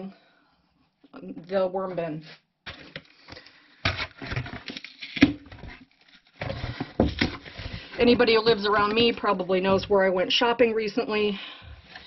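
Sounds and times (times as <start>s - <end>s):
cardboard crackling and tapping: 2.7s - 10.0s
cardboard rustling: 3.9s - 10.0s.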